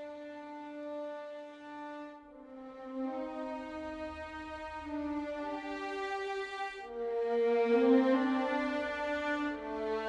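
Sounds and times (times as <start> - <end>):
violins playing sustained notes: 0.0 - 10.0.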